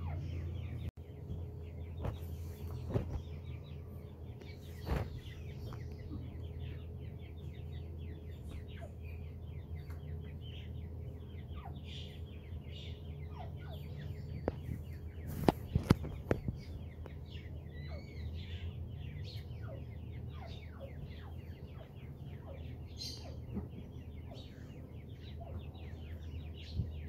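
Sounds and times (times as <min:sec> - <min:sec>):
chicks peeping: 0:00.0 - 0:27.0
low hum: 0:00.0 - 0:27.0.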